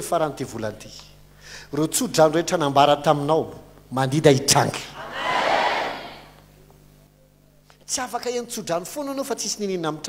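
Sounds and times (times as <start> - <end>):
congregation responding in unison: 5.0 - 6.3.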